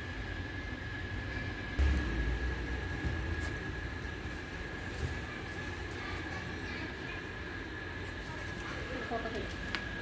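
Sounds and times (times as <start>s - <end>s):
low mechanical rumble and hiss: 0.0s - 10.0s.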